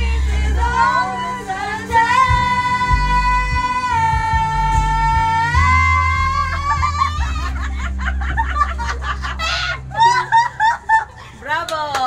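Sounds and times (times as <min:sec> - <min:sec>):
girls singing into microphones: 0:00.0 - 0:07.6
karaoke backing track with bass: 0:00.0 - 0:12.0
girls laughing loudly: 0:06.1 - 0:11.4.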